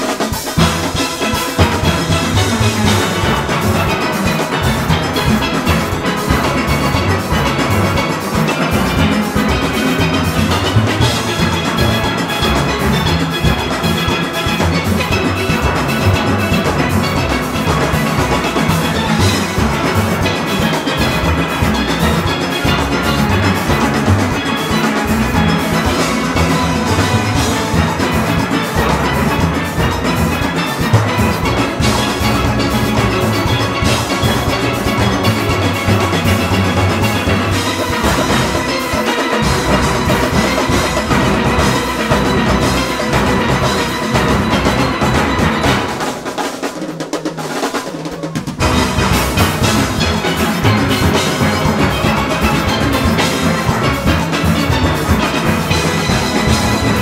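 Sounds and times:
steel pans playing: 0.0s - 57.0s.

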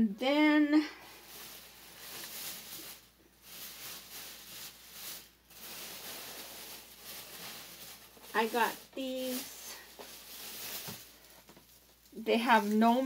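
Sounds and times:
packaging rustling and crinkling: 1.0s - 13.0s.

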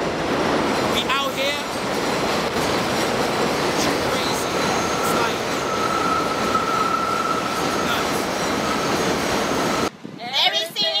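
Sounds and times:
train wheels rumbling on rails: 0.0s - 10.1s
high-pitched wheel squeal: 4.3s - 9.9s.

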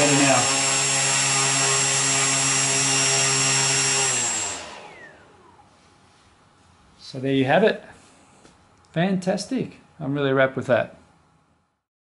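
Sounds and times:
drone motor and propeller whine: 0.0s - 5.7s.

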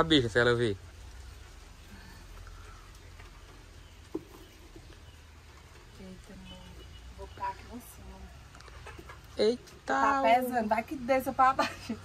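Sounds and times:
faint handling of eggs: 0.1s - 10.2s.

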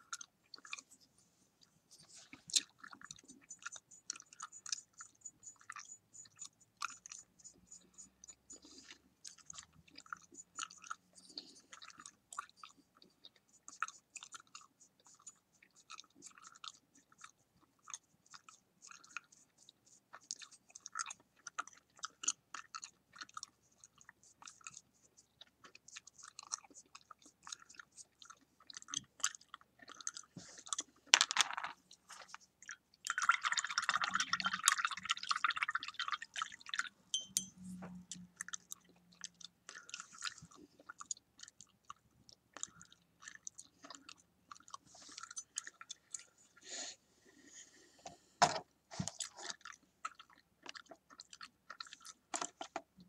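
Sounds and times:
bubble gum chewing clicks: 37.9s - 46.2s, 49.0s - 53.0s.

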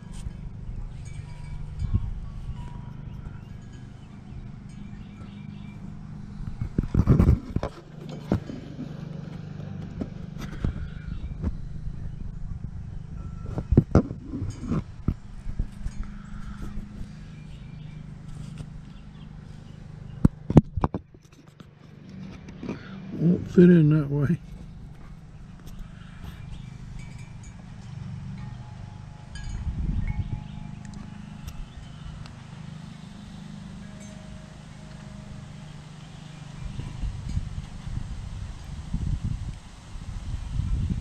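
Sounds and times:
steady low hum: 0.0s - 41.0s.

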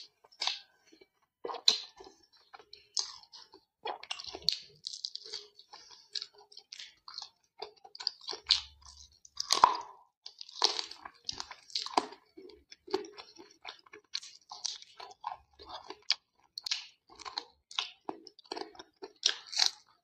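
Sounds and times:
close chewing and crunching: 0.0s - 20.0s.

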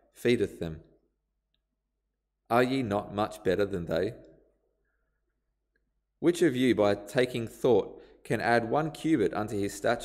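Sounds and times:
man reading aloud: 0.0s - 0.9s, 2.5s - 4.3s, 6.2s - 10.0s.

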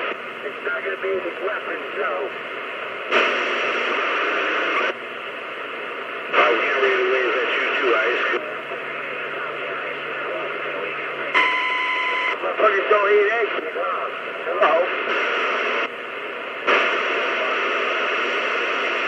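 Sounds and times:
garbled radio voices: 0.0s - 19.0s
static hiss: 0.0s - 19.0s.

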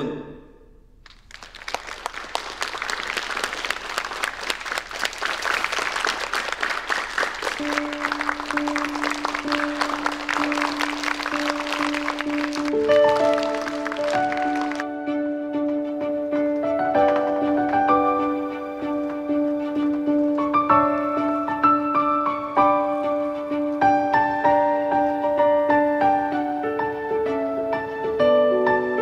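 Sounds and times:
audience applauding: 1.0s - 15.0s
piano notes: 2.8s - 29.0s.

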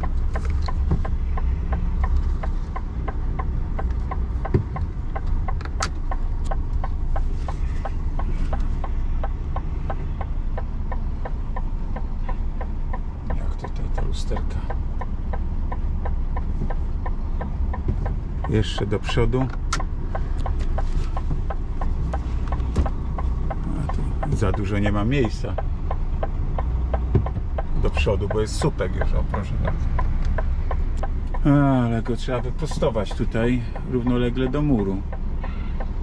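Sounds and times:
diesel engine low rumble: 0.0s - 36.0s
indicator relay ticking: 0.0s - 36.0s.

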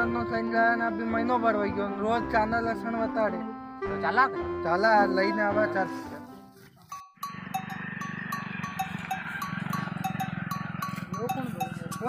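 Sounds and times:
livestock bells clinking: 6.9s - 12.0s.

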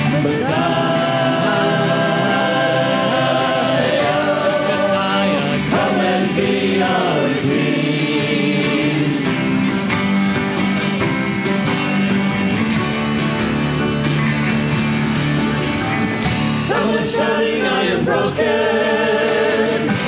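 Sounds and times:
church choir singing gospel: 0.0s - 10.2s, 16.3s - 20.0s
band with piano guitars drums: 0.0s - 20.0s.

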